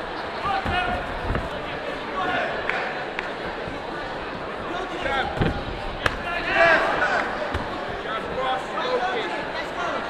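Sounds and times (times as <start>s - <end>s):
murmur of crowd in hall: 0.0s - 10.0s
padded blows thudding: 0.4s - 1.7s, 4.7s - 8.7s
spectators shouting: 6.1s - 7.5s.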